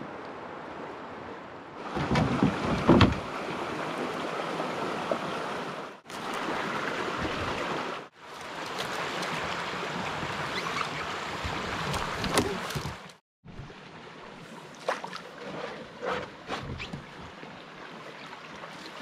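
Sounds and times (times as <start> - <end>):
rushing water: 0.0 - 19.0
canoe knocks and bumps: 1.9 - 3.3, 11.4 - 13.1.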